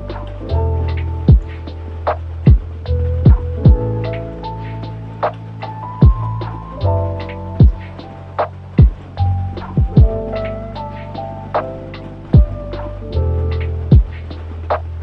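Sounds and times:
lo-fi hip hop beat: 0:00.0 - 0:15.0.

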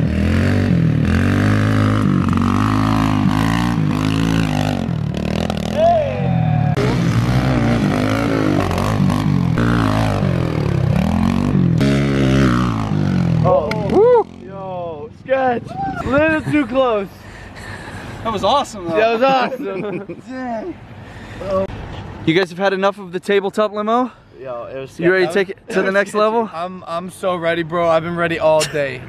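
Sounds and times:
dirt bike engine revving: 0:00.0 - 0:14.9.

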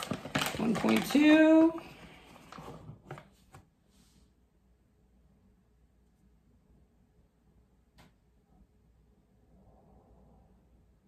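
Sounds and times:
soft scrape: 0:03.8 - 0:04.4.

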